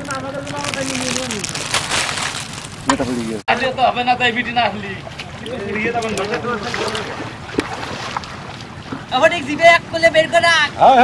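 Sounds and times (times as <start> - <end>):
water sloshing and splashing: 0.0 - 3.4, 4.2 - 11.0.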